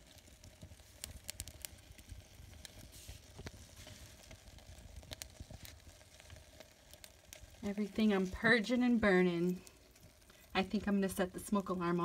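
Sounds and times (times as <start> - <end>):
paper burning crackling: 0.0 - 12.0.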